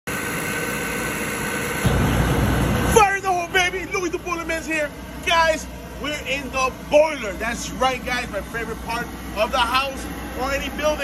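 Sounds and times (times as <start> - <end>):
deep rumble of burning flame: 0.1 - 11.0
oil burner motor and blower hum: 0.1 - 11.0
man talking loudly: 2.9 - 11.0.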